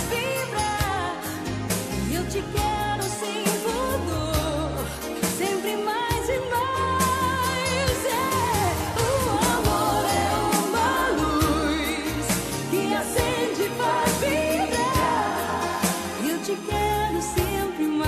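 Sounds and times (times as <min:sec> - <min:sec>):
person singing with vibrato: 0:00.0 - 0:18.0
steady drums: 0:00.0 - 0:18.0
bass line: 0:06.1 - 0:17.8.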